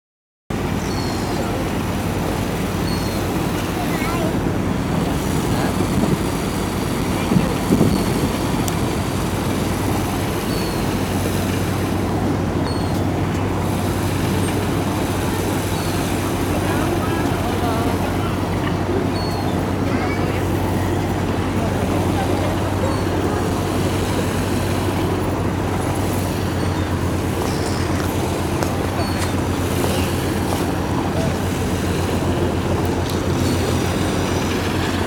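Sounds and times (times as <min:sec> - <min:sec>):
boat engine idling: 0:00.5 - 0:35.0
harbour noise: 0:00.5 - 0:35.0
indistinct voices: 0:00.7 - 0:35.0.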